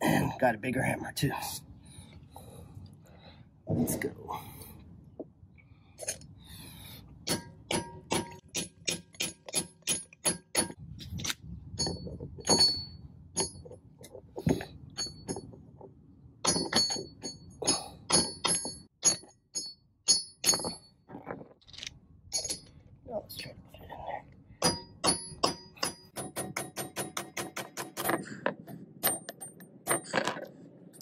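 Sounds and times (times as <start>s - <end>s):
hammer striking steel drift: 24.6s - 28.3s.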